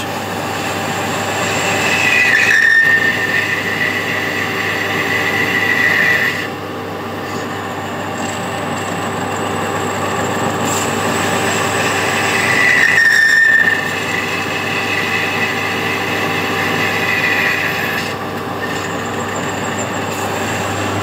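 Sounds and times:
high squeal from cutting tool: 0.0s - 6.6s, 8.2s - 21.0s
lathe cutting metal: 0.0s - 21.0s
machine hum: 0.0s - 21.0s.

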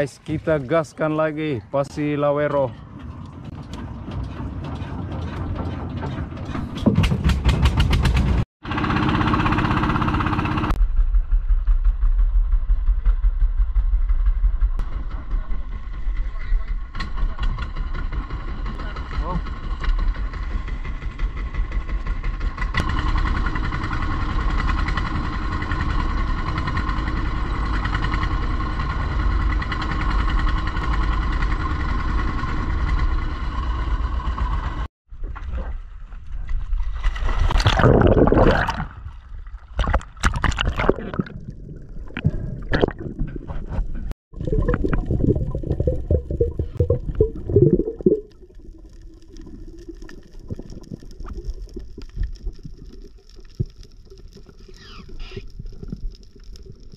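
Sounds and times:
boat engine running: 2.6s - 10.8s, 14.6s - 34.9s, 39.7s - 52.6s.

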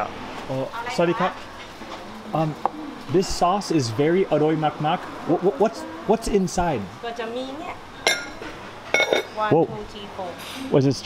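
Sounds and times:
metal utensils clinking ceramic bowls: 8.0s - 9.4s.

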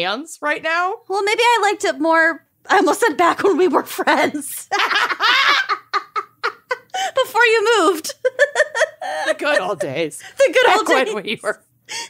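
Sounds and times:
women laughing: 4.7s - 7.3s, 8.0s - 11.5s.

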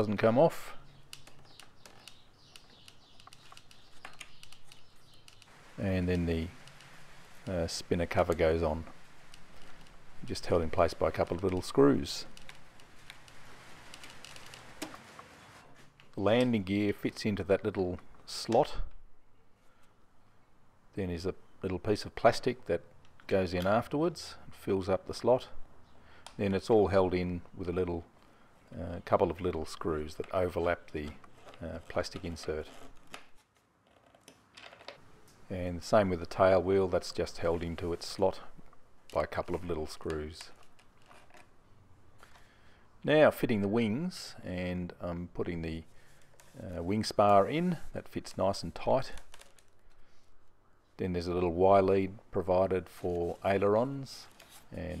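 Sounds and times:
low hiss: 2.0s - 33.2s, 35.0s - 55.0s.

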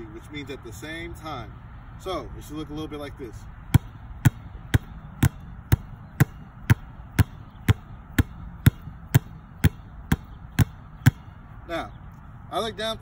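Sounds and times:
basketballs bouncing on concrete: 3.7s - 11.5s.

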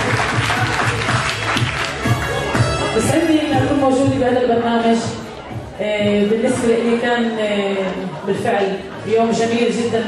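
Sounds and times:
group of people clapping: 0.0s - 3.0s
music with steady low beat: 0.0s - 6.7s.

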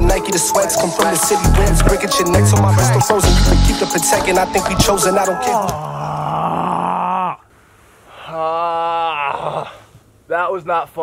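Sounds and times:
man groaning in pain: 5.0s - 7.4s, 8.2s - 9.8s.

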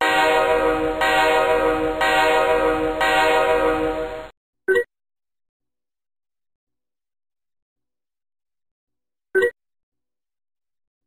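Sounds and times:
loud multi-tone horn blast: 0.0s - 4.3s.

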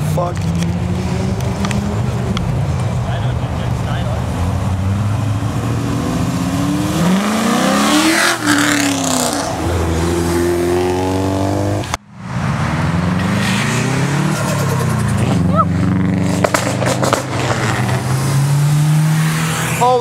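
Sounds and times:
exhaust and tyre rush: 0.0s - 20.0s
car engine revving past: 3.7s - 20.0s.

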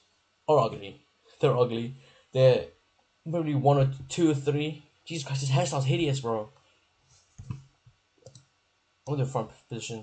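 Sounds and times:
mouse clicks: 8.2s - 8.5s.

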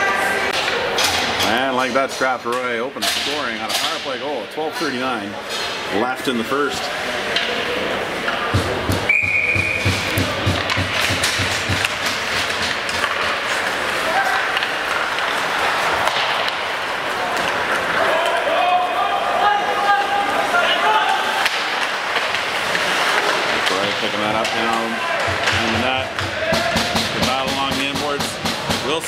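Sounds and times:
voices echoing in arena: 0.0s - 11.9s, 13.6s - 29.0s
hockey sticks and puck banging: 0.0s - 29.0s.

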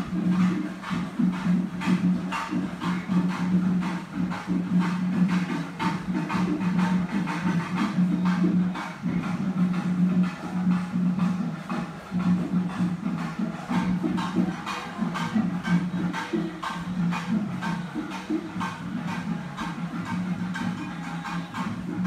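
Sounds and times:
drum strokes: 0.0s - 22.0s.

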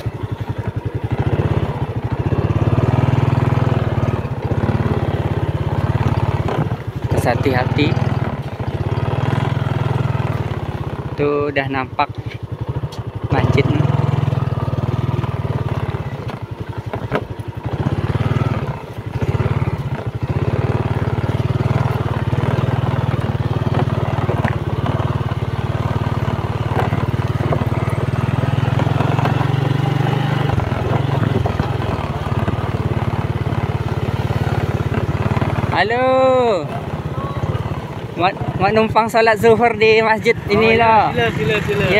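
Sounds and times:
small motorcycle engine running: 0.0s - 41.9s.

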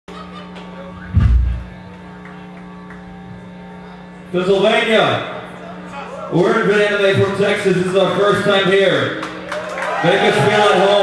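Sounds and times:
amplifier electrical buzz: 0.9s - 5.9s.

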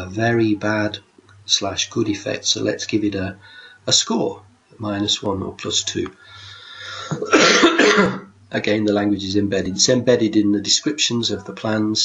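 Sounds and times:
man inhaling: 3.4s - 3.8s, 6.2s - 7.3s
man coughing: 6.9s - 8.3s.

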